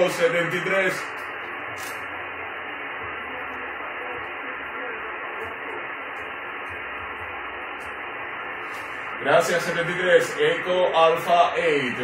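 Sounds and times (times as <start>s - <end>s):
radio speaker hiss: 0.0s - 12.0s.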